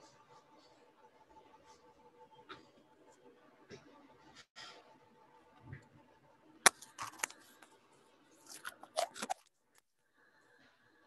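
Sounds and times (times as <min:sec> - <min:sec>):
crisp clicks and crackles: 0:06.6 - 0:07.8, 0:08.4 - 0:09.9.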